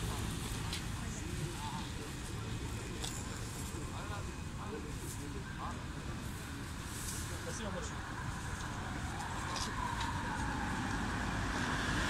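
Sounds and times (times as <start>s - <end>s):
road traffic rumble: 0.0s - 12.0s
vehicle approaching: 8.1s - 12.0s.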